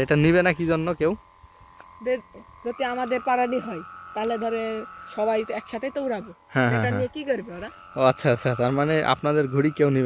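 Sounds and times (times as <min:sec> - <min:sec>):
kite hummer high hum: 0:00.0 - 0:10.0
voices talking: 0:00.0 - 0:10.0
long drawn-out voiced call: 0:01.1 - 0:10.0.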